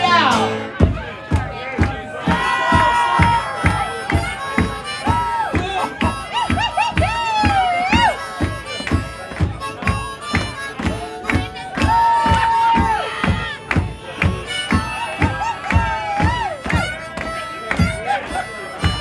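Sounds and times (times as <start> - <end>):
acoustic guitar strumming: 0.0 - 19.0
harmonica bending notes: 2.2 - 19.0.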